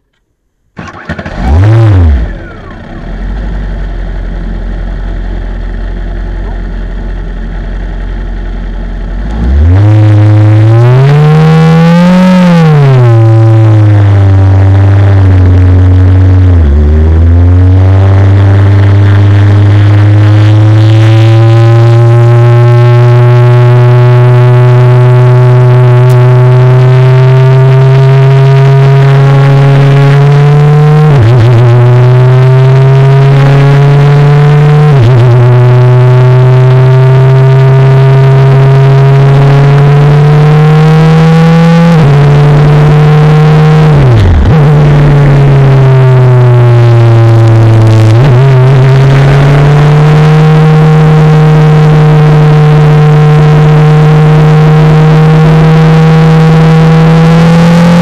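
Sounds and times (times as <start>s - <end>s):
race car engine revving: 0.8s - 3.6s, 9.0s - 58.0s.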